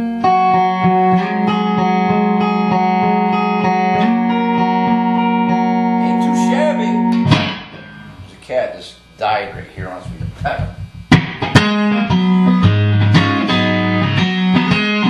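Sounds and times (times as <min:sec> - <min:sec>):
electric guitar through an amp: 0:00.0 - 0:15.0
sharp guitar hit: 0:00.8 - 0:08.3, 0:10.0 - 0:15.0.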